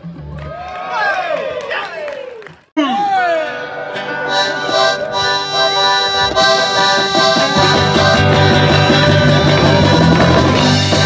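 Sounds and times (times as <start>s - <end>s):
accordion chords: 2.8s - 11.0s
strummed guitars: 2.8s - 11.0s
stepping bass line: 4.4s - 11.0s.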